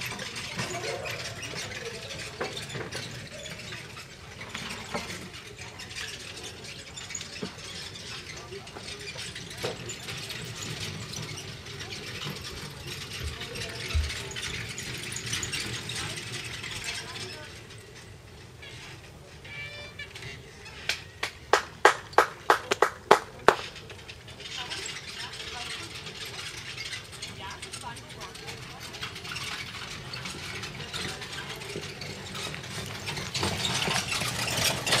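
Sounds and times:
sharp hand claps: 0:20.9 - 0:23.7.

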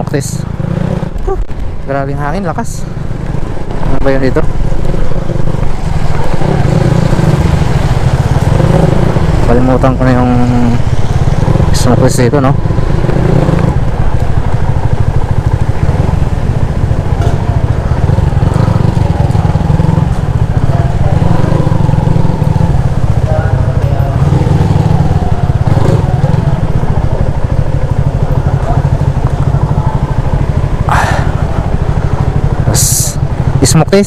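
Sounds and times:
motorcycle engine low rumble: 0:00.0 - 0:34.0.

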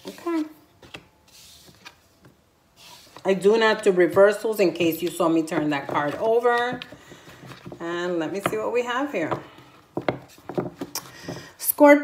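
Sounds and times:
cards clicking and tapping: 0:05.0 - 0:07.8, 0:09.3 - 0:11.5.

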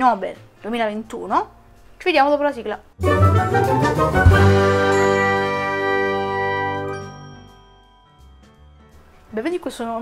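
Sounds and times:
jingle final chord ringing out: 0:04.3 - 0:08.5.

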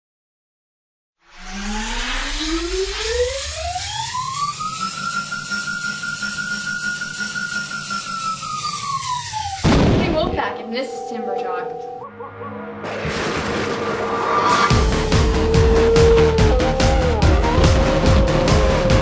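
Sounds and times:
rising synthetic tone: 0:01.2 - 0:19.0
loud hit: 0:09.6 - 0:10.4, 0:12.2 - 0:16.2.

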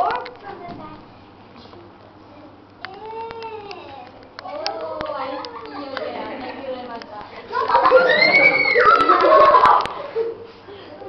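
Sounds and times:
girl's high-pitched wordless vocal: 0:02.2 - 0:06.2.

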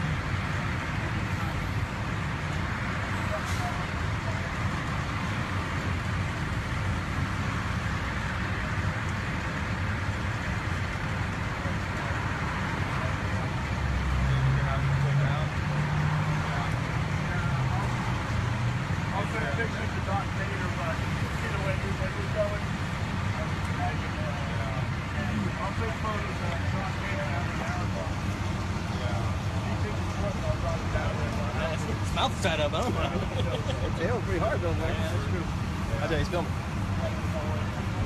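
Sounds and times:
low vehicle engine hum: 0:00.0 - 0:38.0
roadside traffic: 0:00.0 - 0:38.0.

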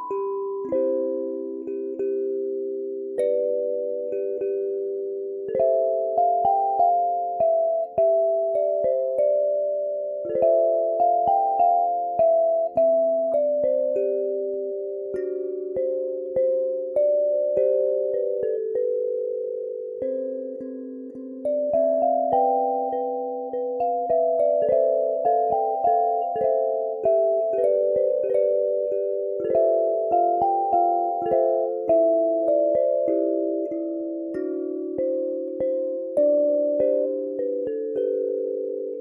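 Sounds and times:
kalimba melody: 0:00.0 - 0:39.0.

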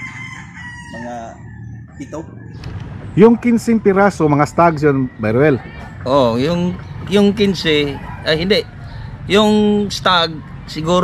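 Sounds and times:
rooster crowing: 0:00.0 - 0:02.6, 0:07.8 - 0:09.4.

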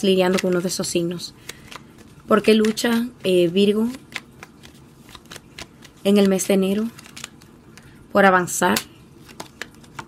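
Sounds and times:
cards clicking and flicking: 0:00.2 - 0:00.7, 0:01.4 - 0:03.0, 0:03.8 - 0:07.9, 0:08.7 - 0:10.0.

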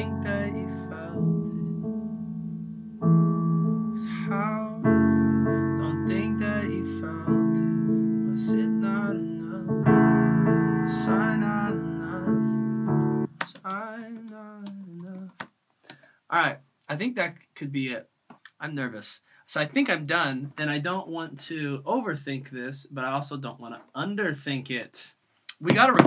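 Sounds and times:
man singing softly: 0:00.0 - 0:01.5, 0:04.0 - 0:09.9, 0:10.9 - 0:12.6, 0:13.4 - 0:15.4
piano chords: 0:00.0 - 0:13.4.

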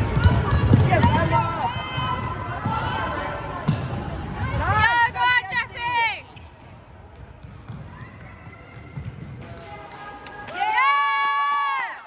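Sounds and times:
sports hall background: 0:00.0 - 0:12.0.

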